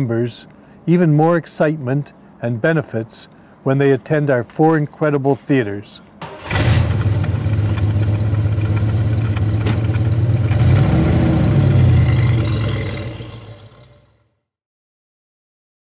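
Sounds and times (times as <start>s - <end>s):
car engine idling: 6.2s - 14.1s
engine revving: 6.2s - 14.2s.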